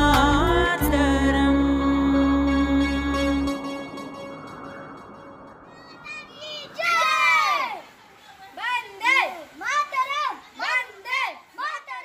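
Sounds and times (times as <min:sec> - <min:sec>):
children shouting a chant: 0:05.6 - 0:08.0, 0:08.8 - 0:12.0.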